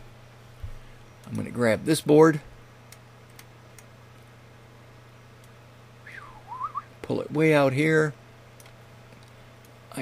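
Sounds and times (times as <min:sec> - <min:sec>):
low electrical hum: 0:00.0 - 0:10.0
computer mouse clicks: 0:02.9 - 0:04.3.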